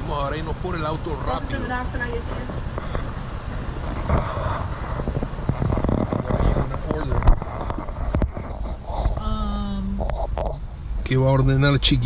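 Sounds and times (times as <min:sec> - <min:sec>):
car engine rumbling: 0:00.0 - 0:12.0
muffled voices: 0:05.9 - 0:12.0.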